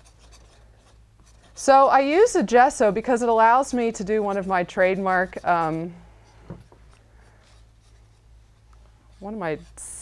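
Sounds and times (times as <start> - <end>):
palette knife scraping paint: 0.0 - 10.0.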